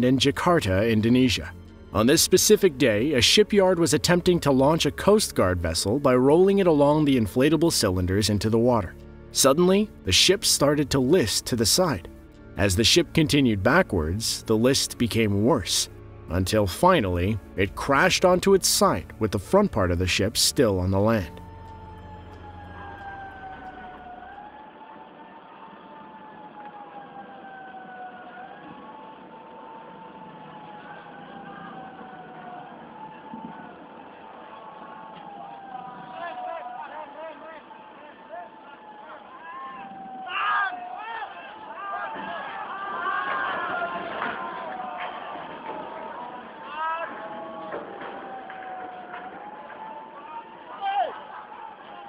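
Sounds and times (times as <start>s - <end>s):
voices shouting: 17.1s - 52.0s
siren wailing: 20.6s - 51.9s
steady outdoor noise: 20.6s - 52.0s.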